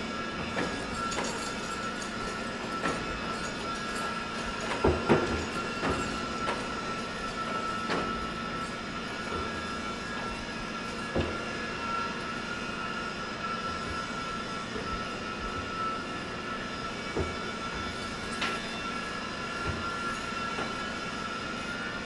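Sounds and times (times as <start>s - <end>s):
shop machinery whining and humming: 0.0s - 22.0s
metallic clanks and knocks: 3.9s - 6.7s.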